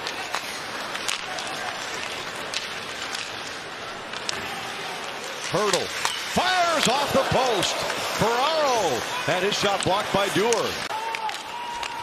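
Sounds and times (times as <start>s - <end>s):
stick and puck clacks: 0.0s - 12.0s
crowd hum: 0.1s - 11.9s.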